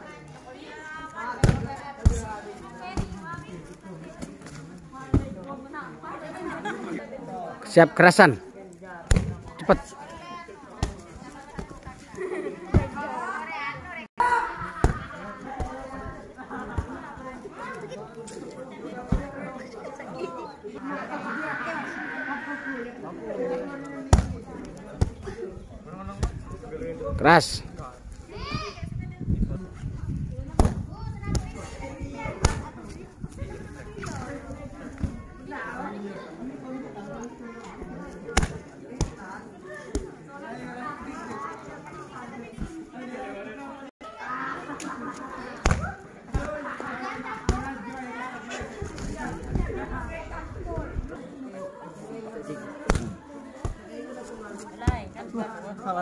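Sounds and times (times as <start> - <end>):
children calling and chattering: 0.0 - 56.0
kicks hitting padded shield: 1.4 - 2.3, 9.1 - 9.5, 30.6 - 31.4, 52.9 - 53.8
kicks thudding on kick shield: 9.1 - 9.5, 30.6 - 31.4
voices calling out: 9.1 - 25.9.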